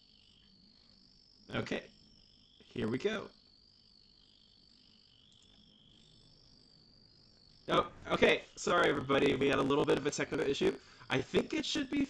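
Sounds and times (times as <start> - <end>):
faint high-pitched background noise: 0.0 - 12.0.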